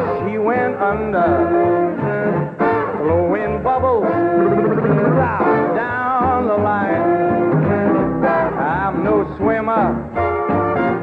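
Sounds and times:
man singing pop: 0.0s - 2.1s, 2.9s - 10.1s
swing big band music: 0.0s - 11.0s.

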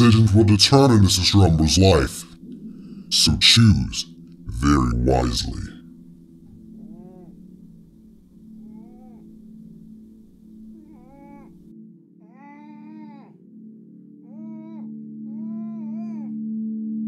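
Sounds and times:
person whimpering: 6.8s - 7.4s.

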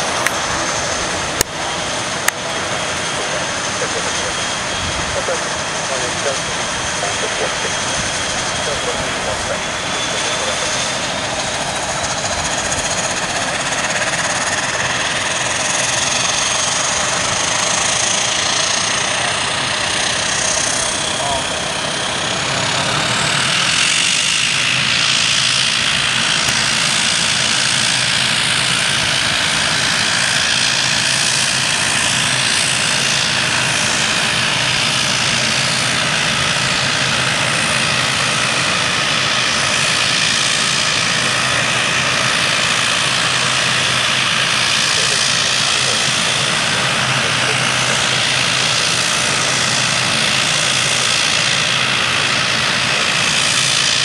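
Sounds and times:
propeller drone: 0.0s - 54.0s
turboprop engines whining: 0.0s - 54.0s.

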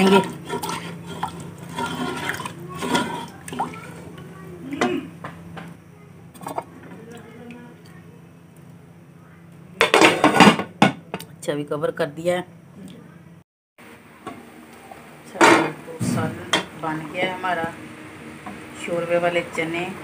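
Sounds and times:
wooden spoon stirring curry: 0.0s - 4.3s.

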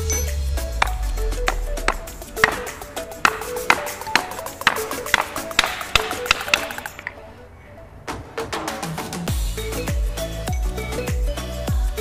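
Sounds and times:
hammer striking steel bearing: 0.0s - 7.2s
background music: 0.0s - 12.0s.

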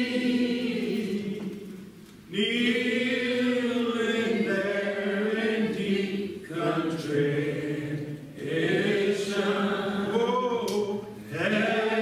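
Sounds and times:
group singing a hymn: 0.0s - 12.0s.

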